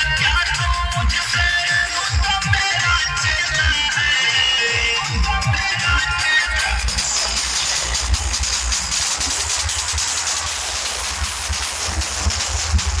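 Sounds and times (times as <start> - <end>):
deep bass thumps: 6.8 - 13.0.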